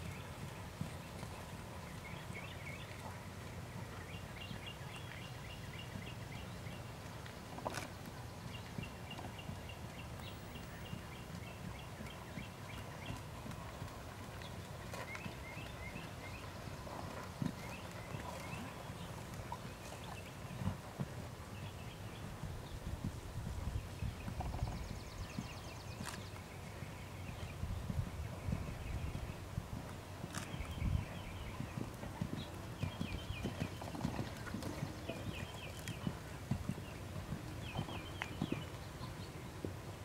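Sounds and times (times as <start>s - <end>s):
horse hooves trotting on sand: 0.0s - 40.0s.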